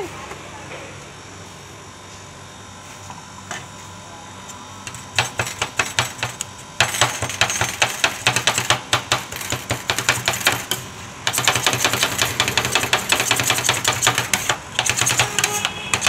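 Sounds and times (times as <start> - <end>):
metal scrapers on steel plate: 11.4 - 16.0.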